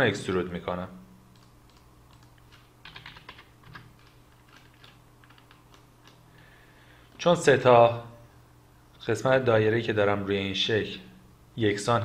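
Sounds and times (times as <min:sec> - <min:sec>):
computer keys clicking: 0:01.3 - 0:06.2.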